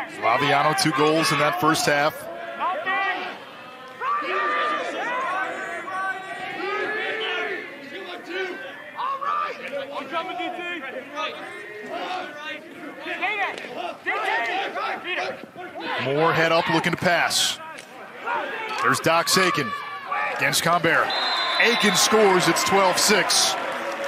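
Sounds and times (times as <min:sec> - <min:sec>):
many voices shouting: 0:00.0 - 0:16.9, 0:18.0 - 0:20.5, 0:21.1 - 0:24.0.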